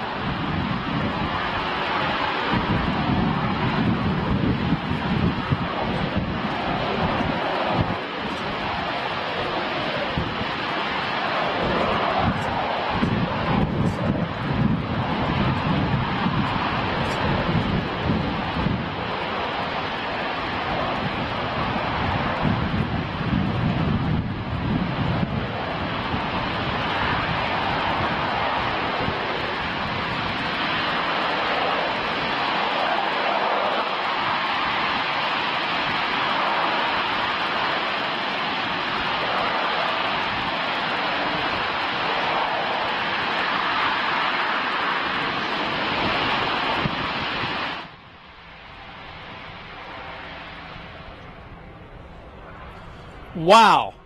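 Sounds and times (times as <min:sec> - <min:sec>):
rocket engine roaring: 0:00.0 - 0:54.0.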